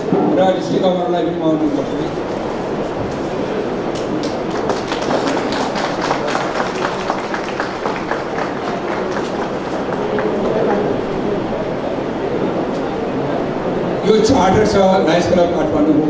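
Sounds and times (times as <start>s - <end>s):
audience applauding: 3.9s - 11.3s.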